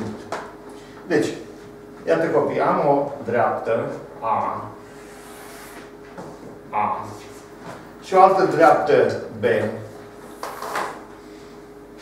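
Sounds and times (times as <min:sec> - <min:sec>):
chalk scraping on blackboard: 0:05.0 - 0:05.9.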